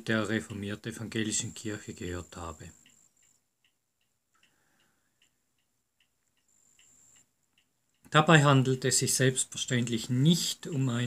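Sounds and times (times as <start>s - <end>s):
faint ticking: 0.0s - 11.0s.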